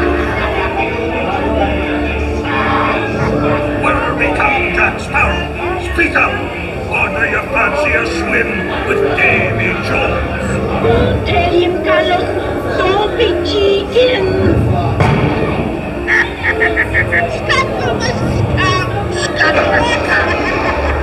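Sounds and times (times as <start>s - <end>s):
music: 0.0s - 21.0s.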